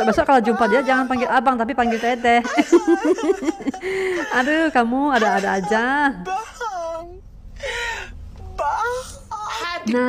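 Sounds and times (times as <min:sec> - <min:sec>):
breathy sigh: 0:03.8 - 0:04.4, 0:07.6 - 0:08.2
man wailing: 0:05.2 - 0:07.2.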